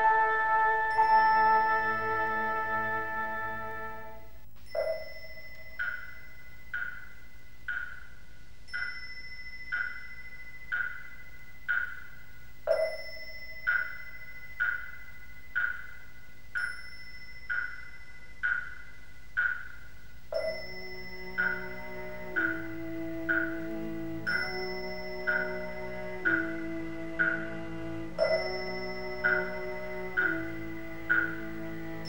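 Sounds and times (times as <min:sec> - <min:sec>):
pitched percussion knocks: 0:04.7 - 0:09.1, 0:09.7 - 0:32.0
deep ringing stroke: 0:20.3 - 0:32.0.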